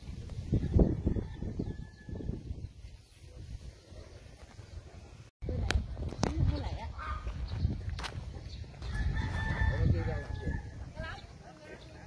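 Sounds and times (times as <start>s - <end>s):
rooster crowing: 8.8s - 10.7s.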